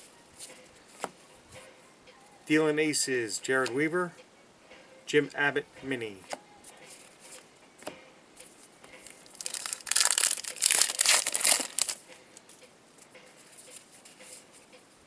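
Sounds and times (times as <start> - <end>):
wrapper tearing and crinkling: 9.2 - 12.0.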